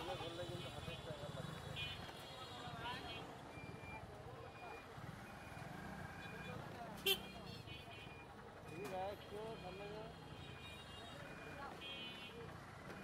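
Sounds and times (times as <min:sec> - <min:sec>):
street traffic: 0:00.0 - 0:13.0.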